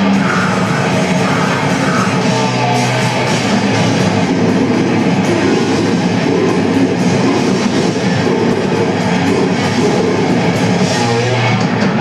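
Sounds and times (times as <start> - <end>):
bass guitar: 0.0 - 12.0
distorted electric guitar: 0.0 - 12.0
drums: 0.0 - 12.0.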